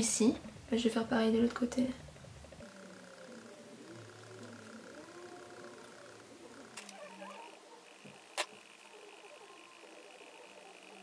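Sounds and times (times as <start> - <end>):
faint high-pitched hum: 0.0 - 11.0.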